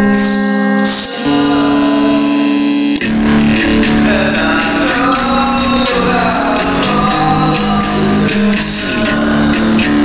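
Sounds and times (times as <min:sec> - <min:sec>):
guitar held chords: 0:00.0 - 0:10.0.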